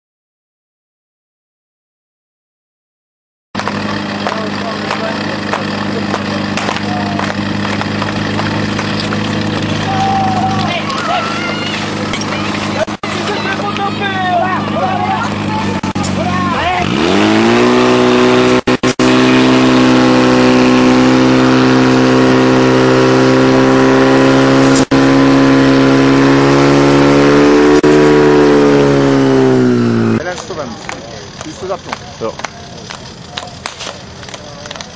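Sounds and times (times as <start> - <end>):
pump engine running: 3.6 - 34.9
people shouting: 9.6 - 17.1.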